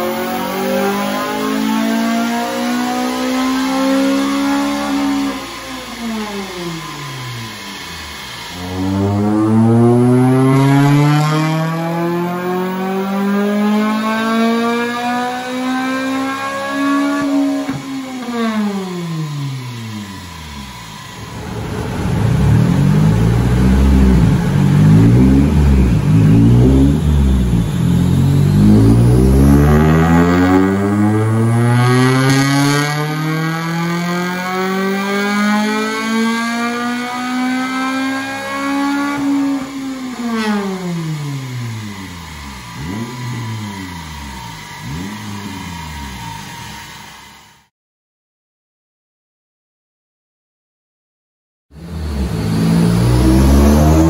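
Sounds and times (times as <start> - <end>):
car engine revving at full throttle: 0.0 - 47.7, 51.8 - 54.0.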